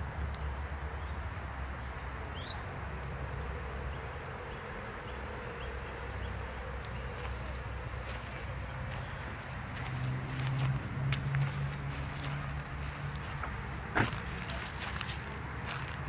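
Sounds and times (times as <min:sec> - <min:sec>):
outdoor background noise: 0:00.0 - 0:16.0.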